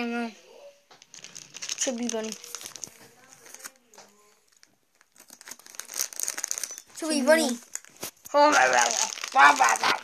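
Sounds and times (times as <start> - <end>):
close rustling and crinkling: 1.0 - 10.0.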